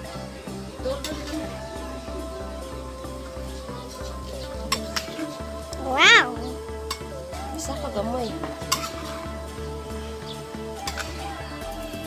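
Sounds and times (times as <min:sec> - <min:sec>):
background music: 0:00.0 - 0:12.0
cat meowing: 0:05.8 - 0:06.4.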